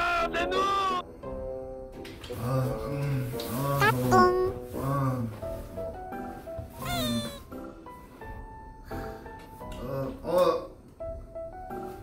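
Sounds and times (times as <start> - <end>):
light background music: 0.0 - 12.0
cat meow: 6.8 - 7.5.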